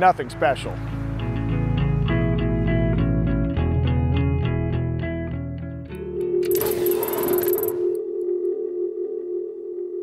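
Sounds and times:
synthesized low tone: 5.9 - 10.0.

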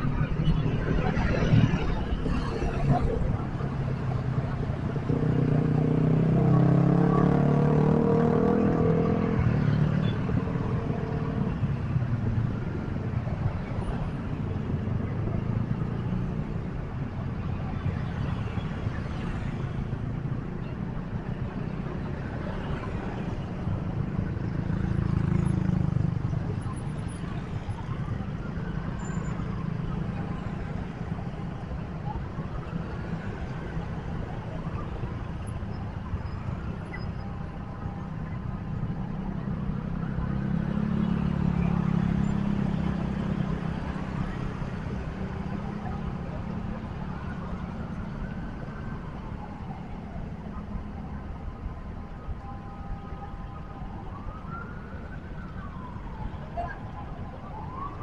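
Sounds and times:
road traffic rumble: 0.0 - 58.0.

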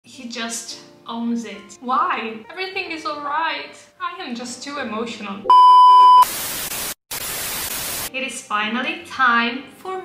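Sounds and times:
test-tone beep: 5.5 - 6.3.

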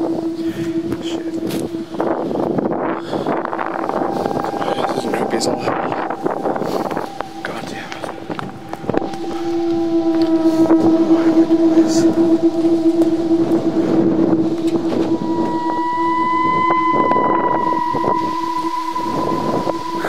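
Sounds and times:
higher steady tone: 0.0 - 20.0
steady humming drone: 0.0 - 20.0
wind noise on microphone: 0.0 - 20.0.

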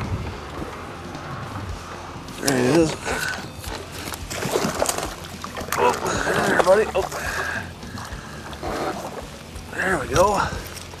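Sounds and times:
water lapping against boat: 0.0 - 11.0
man talking: 5.8 - 7.4, 9.7 - 10.6.

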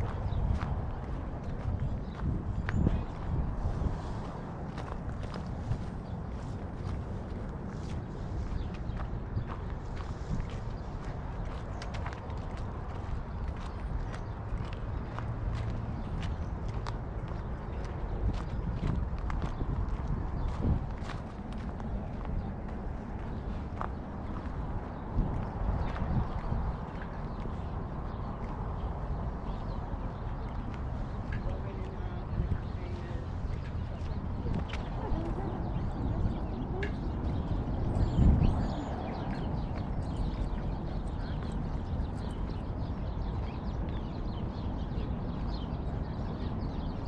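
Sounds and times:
small birds chirping: 0.0 - 47.0
steady low rumble: 0.0 - 47.0.

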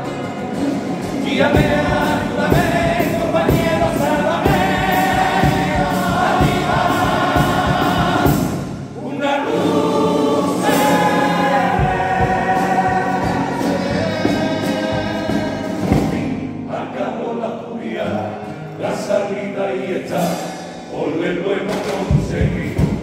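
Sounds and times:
guitars playing: 0.0 - 23.0
male chorus singing in harmony: 0.6 - 23.0
steady beat: 1.4 - 8.9, 10.5 - 16.3.

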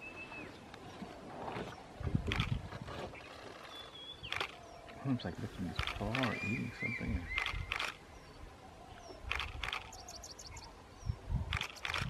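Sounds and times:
small birds chirping: 1.7 - 12.0
short clicks: 4.3 - 4.6, 7.3 - 8.0, 9.3 - 10.2, 11.5 - 12.0.

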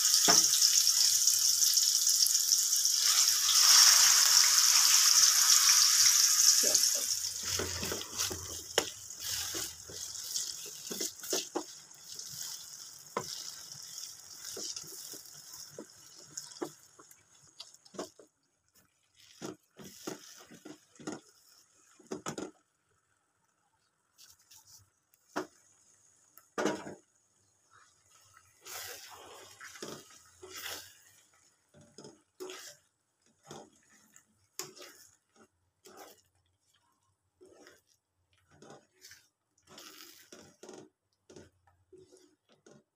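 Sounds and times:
tap water running into sink: 0.2 - 18.3.

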